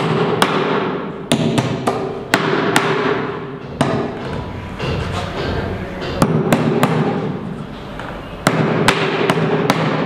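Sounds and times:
hammer striking nails into wood: 0.0s - 4.1s, 8.5s - 10.0s.

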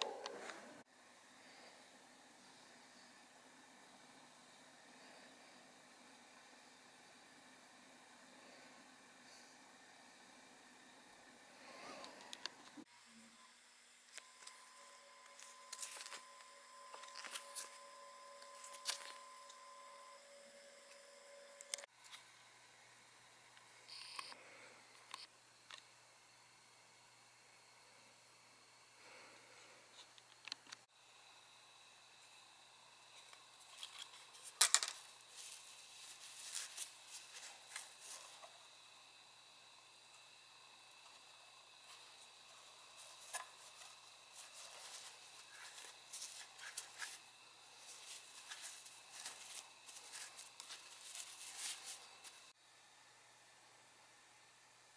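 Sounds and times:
fabric rustling: 47.8s - 52.5s.

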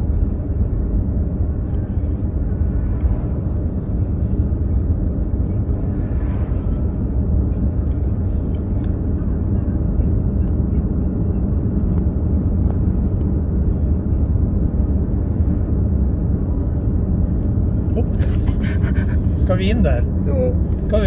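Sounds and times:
car engine and tyre rumble: 0.0s - 21.0s.

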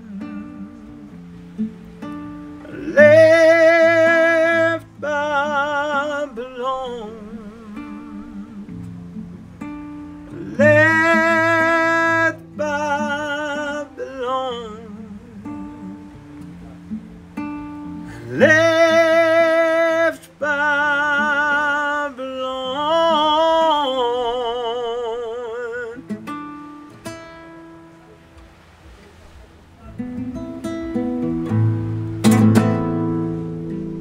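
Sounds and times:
man singing with vibrato: 0.0s - 17.0s, 17.6s - 26.3s
acoustic guitar: 0.0s - 34.0s.

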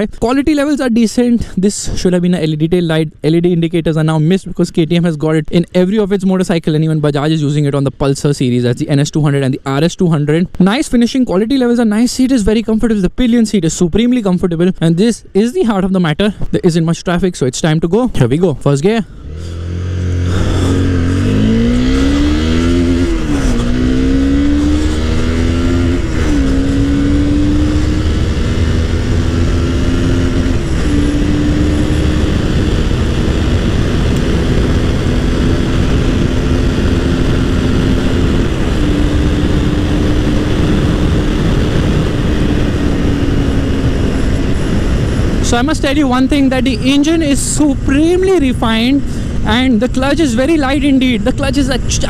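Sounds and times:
motorcycle engine accelerating: 19.0s - 52.0s
wind rush: 19.1s - 52.0s.

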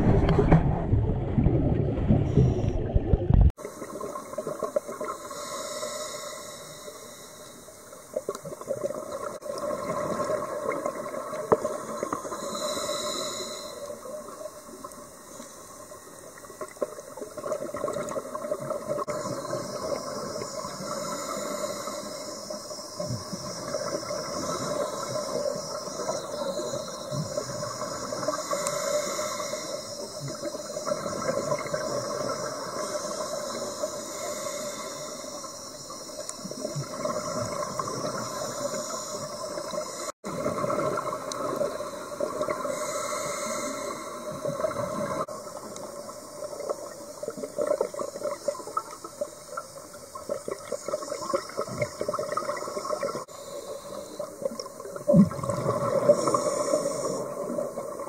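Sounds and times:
underwater bubbling and rushing: 0.0s - 58.0s.

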